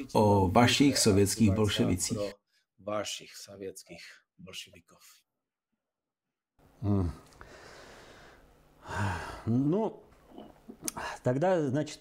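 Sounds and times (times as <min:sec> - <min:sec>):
faint steady hiss: 0:06.6 - 0:12.0
man saying hmm: 0:06.8 - 0:07.3
intake of breath: 0:07.4 - 0:09.5.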